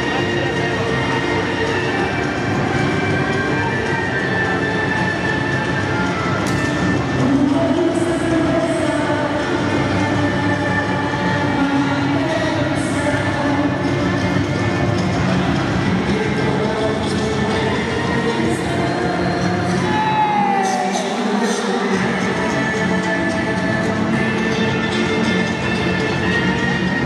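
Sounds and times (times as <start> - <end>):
background din in hall: 0.0 - 27.0
folk dance music echoing: 0.0 - 27.0.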